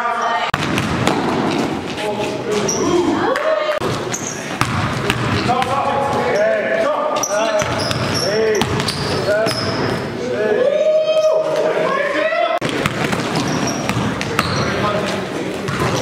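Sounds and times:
sneakers squeaking: 0.1s - 10.2s, 12.6s - 16.0s
basketball bouncing: 0.6s - 2.0s, 3.8s - 6.2s, 7.5s - 9.9s, 12.6s - 14.8s, 15.6s - 16.0s.

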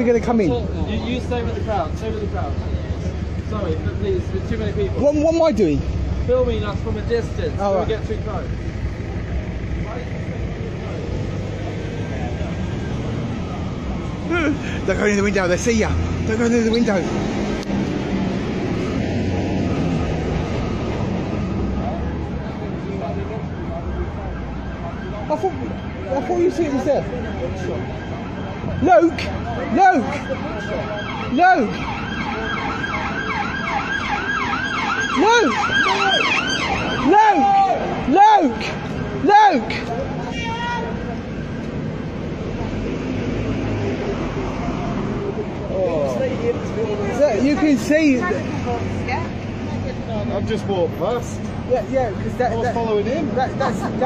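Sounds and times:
low rumble of street noise: 0.0s - 54.0s
faint voices of people: 20.5s - 54.0s.

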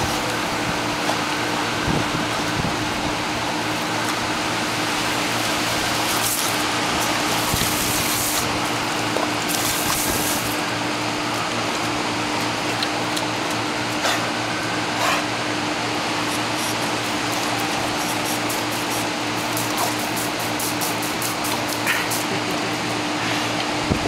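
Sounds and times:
garden hose spraying water: 0.0s - 23.8s
low mechanical hum: 0.0s - 24.0s.

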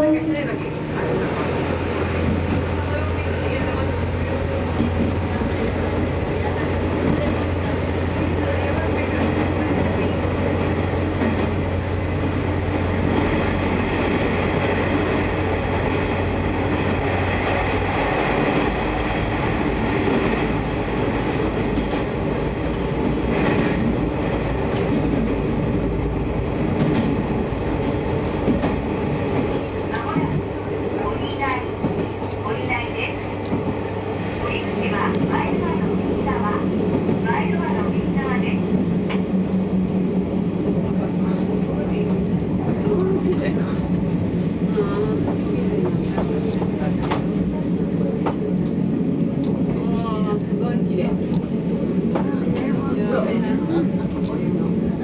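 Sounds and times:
train wheels and engine rumbling: 0.0s - 55.0s.

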